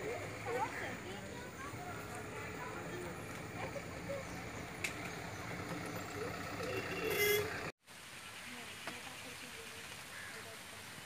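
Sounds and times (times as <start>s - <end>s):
distant indistinct voices: 0.0s - 7.7s
outdoor background hum: 0.0s - 7.7s.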